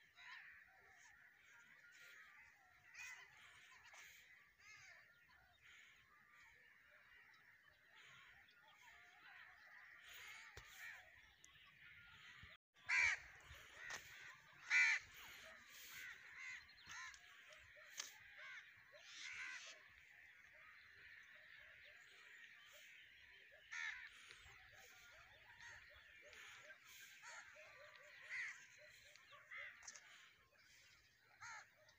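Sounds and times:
crows cawing: 0.0s - 31.9s.

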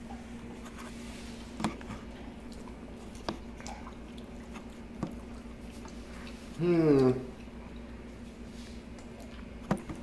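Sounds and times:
chewing food: 0.0s - 10.0s
steady low hum: 0.0s - 10.0s.

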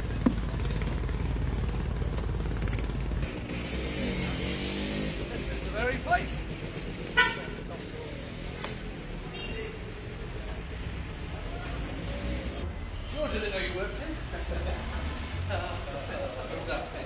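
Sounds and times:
passing vehicles: 0.0s - 17.0s
car horn toot: 7.1s - 7.6s.

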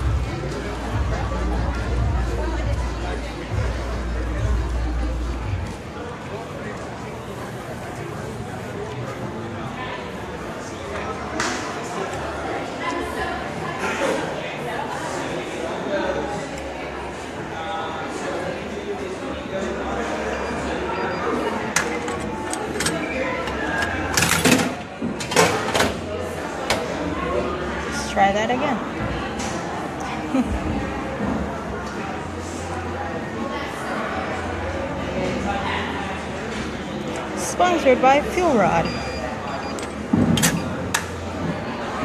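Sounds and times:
crowd chatter: 0.0s - 42.0s
low steady background din: 0.0s - 42.0s.

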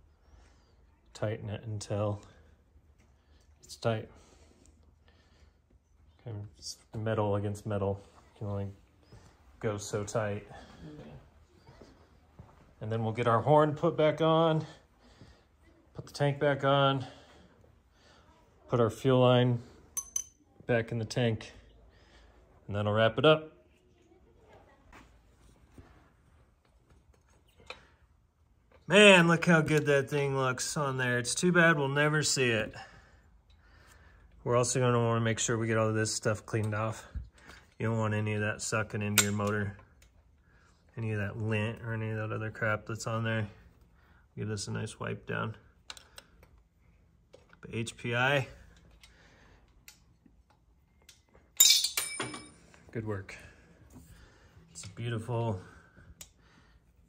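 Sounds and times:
metal clinking against metal: 19.9s - 20.5s, 51.0s - 52.8s.

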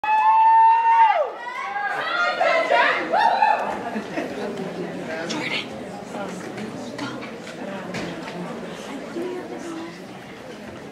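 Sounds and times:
audience voices: 1.3s - 10.9s.

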